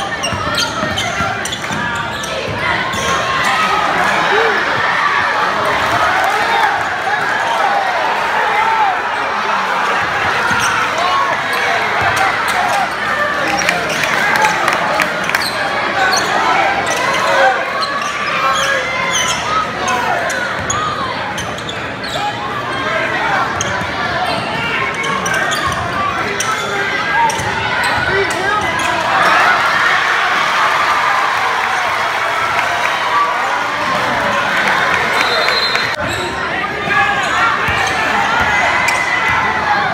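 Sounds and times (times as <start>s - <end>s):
crowd shouting and cheering: 0.0s - 39.9s.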